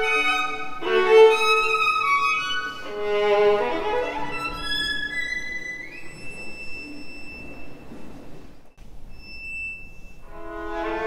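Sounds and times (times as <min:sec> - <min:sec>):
violin high note: 0:09.8 - 0:11.0.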